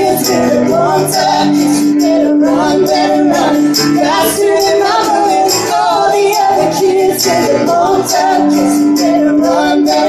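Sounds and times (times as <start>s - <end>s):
pop-rock band playing: 0.0s - 10.0s
woman singing: 0.0s - 10.0s.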